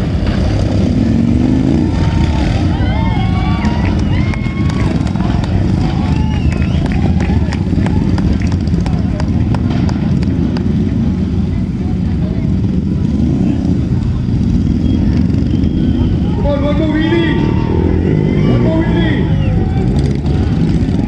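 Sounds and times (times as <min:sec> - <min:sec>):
crowd voices and shouts: 0:00.0 - 0:21.0
motorcycle engines running: 0:00.0 - 0:21.0.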